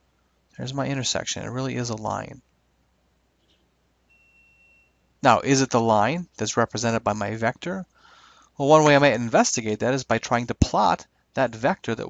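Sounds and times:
faint high tone: 0:04.1 - 0:05.4.

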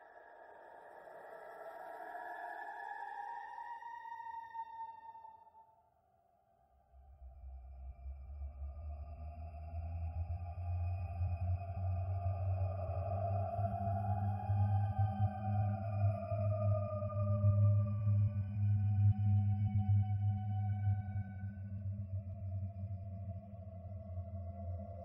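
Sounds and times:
gliding sustained tones: 0:00.0 - 0:05.6.

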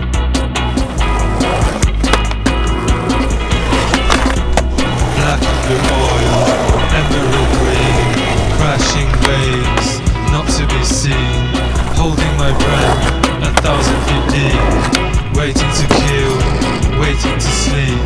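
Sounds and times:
rock instrumental music: 0:00.0 - 0:18.0
skateboard wheels rolling on concrete: 0:00.0 - 0:18.0
skateboard clacks: 0:00.7 - 0:10.5, 0:11.6 - 0:16.8.

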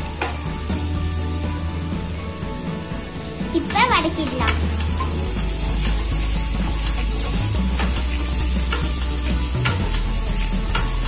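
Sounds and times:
onions sizzling in hot oil: 0:00.0 - 0:11.0
wooden spatula scraping pan: 0:00.0 - 0:11.0.

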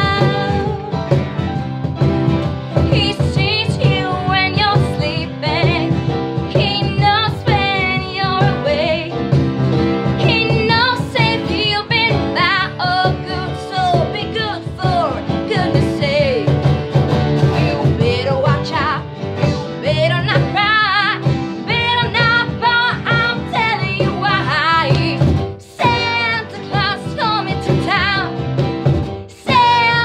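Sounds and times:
woman singing pop song: 0:00.0 - 0:01.6, 0:02.7 - 0:09.3, 0:10.2 - 0:30.0
strummed acoustic guitars: 0:00.0 - 0:30.0.

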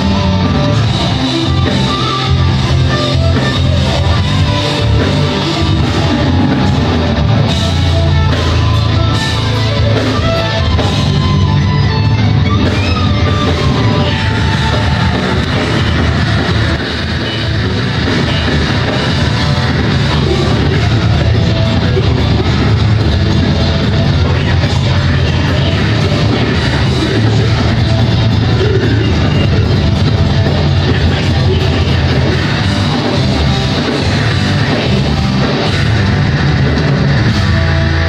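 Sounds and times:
heavy metal band playing: 0:00.0 - 0:38.0.

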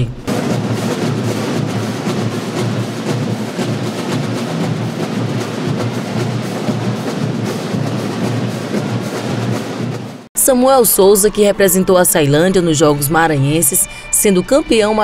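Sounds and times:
bass drums: 0:00.0 - 0:10.3
marching band drums: 0:00.0 - 0:10.3.

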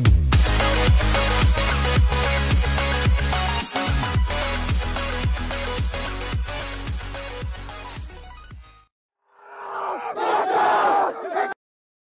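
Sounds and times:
group yell: 0:09.3 - 0:11.6.

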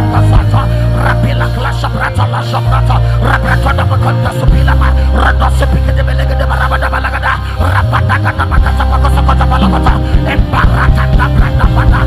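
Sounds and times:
man praying into microphone: 0:00.0 - 0:12.0
worship music with deep bass: 0:00.0 - 0:12.0.

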